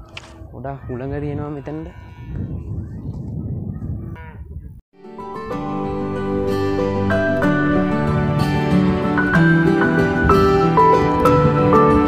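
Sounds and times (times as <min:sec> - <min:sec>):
wind buffeting microphone: 0:00.0 - 0:04.8
calm instrumental music: 0:05.0 - 0:12.0.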